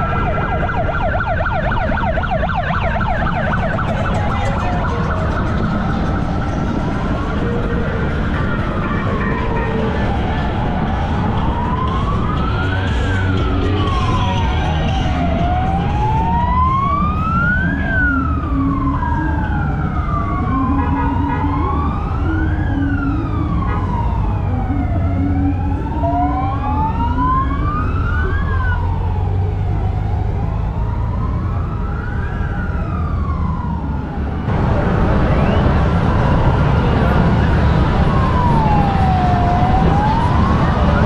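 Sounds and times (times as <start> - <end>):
motorcycle engines rumbling: 0.0 - 41.0
police siren wailing: 0.0 - 41.0.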